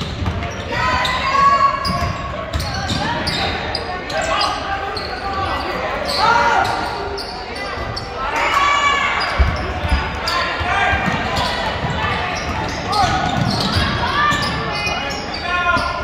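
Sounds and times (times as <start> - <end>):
sneakers squeaking: 0.0 - 16.0
people calling out: 0.6 - 16.0.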